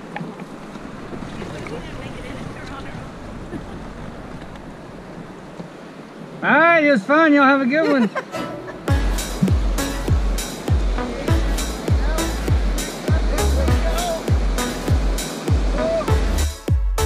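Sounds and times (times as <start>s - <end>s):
electronic music with heavy bass: 8.9s - 17.0s.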